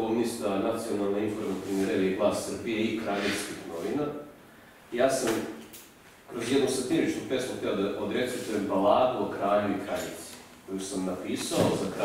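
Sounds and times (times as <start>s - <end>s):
man speaking: 0.0s - 4.3s, 4.9s - 5.6s, 6.3s - 12.0s.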